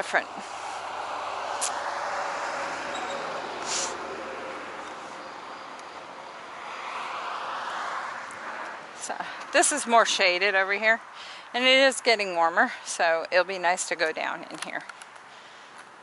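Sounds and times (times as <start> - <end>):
cars passing on road: 0.0 - 16.0
brief hiss: 3.6 - 4.0.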